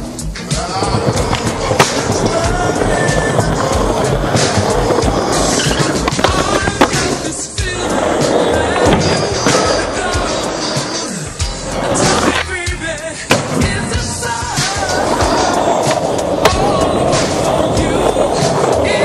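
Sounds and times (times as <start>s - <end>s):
music: 0.0s - 19.0s
skateboard wheels rolling on concrete: 0.0s - 19.0s.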